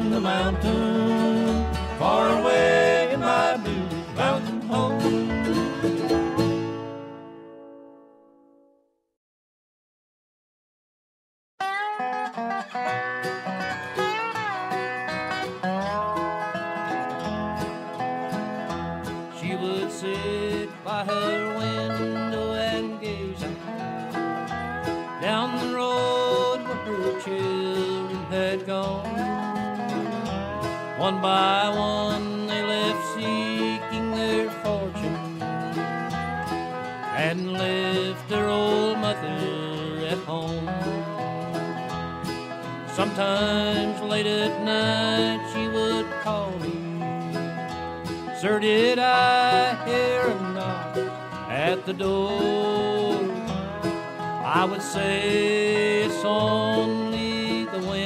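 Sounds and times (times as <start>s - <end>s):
bluegrass band playing: 0.0s - 7.5s, 11.7s - 58.0s.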